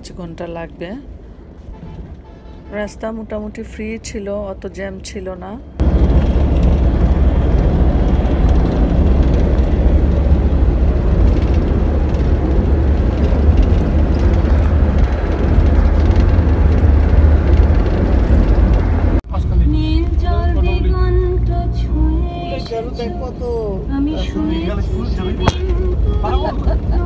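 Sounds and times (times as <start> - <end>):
wind and road noise in vehicle: 0.0 - 27.0
wind buffeting microphone: 5.8 - 19.2.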